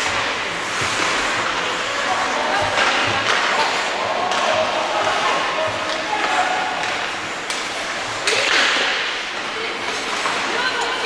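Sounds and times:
skate scraping on ice: 0.0 - 4.6.

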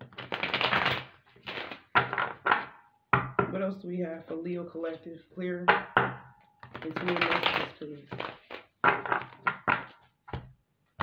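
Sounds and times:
cards being riffle-shuffled: 0.0 - 2.4, 6.6 - 9.9.

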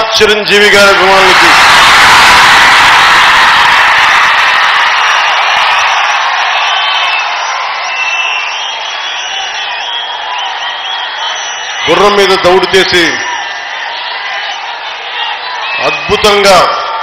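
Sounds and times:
crowd cheering and shouting: 0.0 - 17.0
shrill whistles: 4.5 - 16.4.

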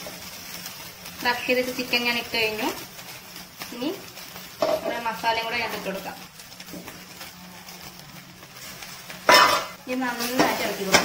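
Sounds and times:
spoon clanging against pan: 9.3 - 11.0.

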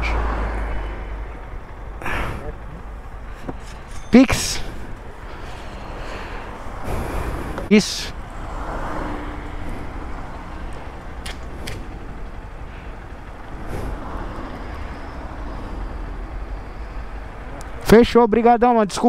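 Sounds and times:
low rumble of street background: 0.0 - 19.0.

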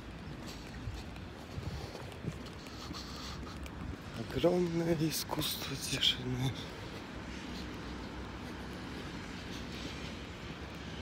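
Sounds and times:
footsteps walking: 0.0 - 11.0.

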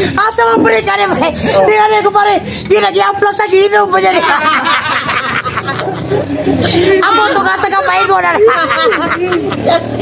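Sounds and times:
men laughing and talking: 1.0 - 2.8, 3.4 - 10.0.

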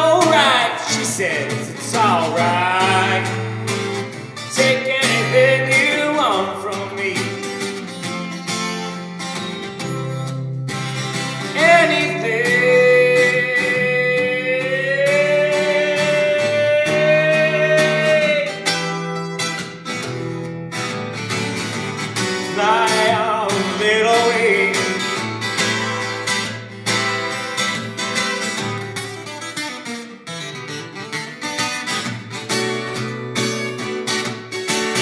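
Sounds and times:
man singing: 0.0 - 7.7, 11.4 - 19.2, 22.2 - 25.8
acoustic guitar: 0.0 - 35.0.

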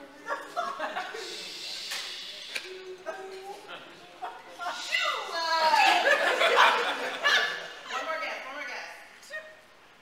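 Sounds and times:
people chuckling: 0.0 - 1.9, 5.8 - 7.8
indistinct group talk: 0.0 - 8.4.

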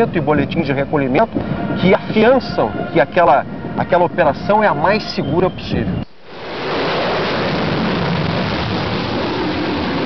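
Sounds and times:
wind blowing on microphone: 0.0 - 10.0.

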